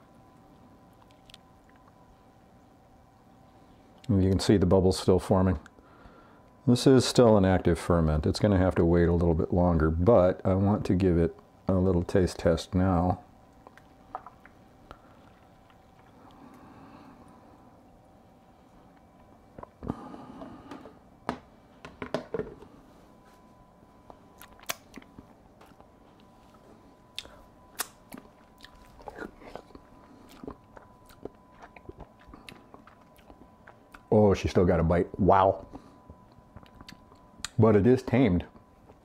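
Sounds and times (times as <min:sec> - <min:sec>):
lip smacks and mouth clicks: 0:01.0 - 0:02.0, 0:24.4 - 0:25.9, 0:27.1 - 0:34.0, 0:36.6 - 0:37.6.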